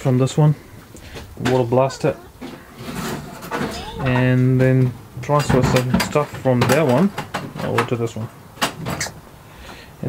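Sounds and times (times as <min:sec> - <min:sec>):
quiet voices: 0:00.9 - 0:04.9
man speaking: 0:01.4 - 0:02.4, 0:03.5 - 0:04.8
child's high-pitched call: 0:01.7 - 0:04.3.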